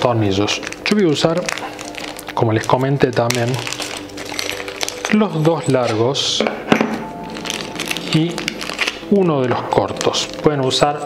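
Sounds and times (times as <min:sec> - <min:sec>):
plastic bag of screws crinkling: 0:00.0 - 0:06.2, 0:07.2 - 0:11.0
background music: 0:00.0 - 0:11.0.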